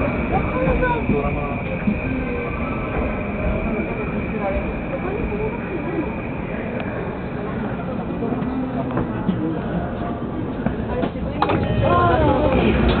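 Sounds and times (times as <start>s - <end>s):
train interior rumble: 0.0s - 13.0s.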